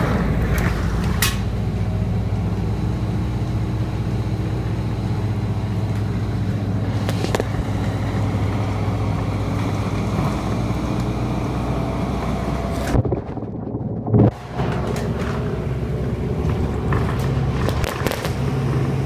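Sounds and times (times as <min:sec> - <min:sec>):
bus engine drone: 0:00.0 - 0:19.0
road noise: 0:00.0 - 0:19.0.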